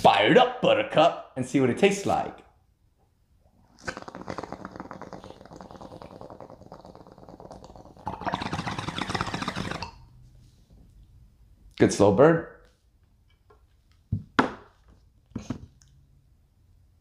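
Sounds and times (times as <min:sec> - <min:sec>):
water bubbling in a bong: 0:03.6 - 0:10.1.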